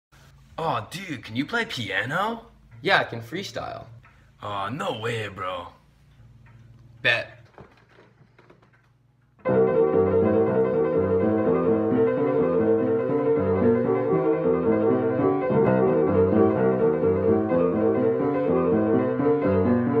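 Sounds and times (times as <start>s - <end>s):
grand piano playing: 9.4s - 20.0s.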